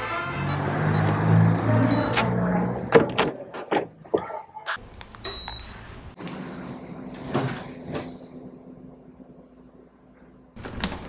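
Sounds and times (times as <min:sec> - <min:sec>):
air conditioner beep: 0:01.9 - 0:02.2, 0:05.2 - 0:05.8.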